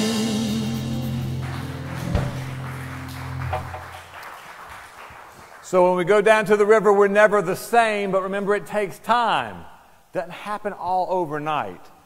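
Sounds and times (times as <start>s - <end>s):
band chord on guitars and keyboard: 0.0s - 4.0s
sharp knock: 2.0s - 2.6s.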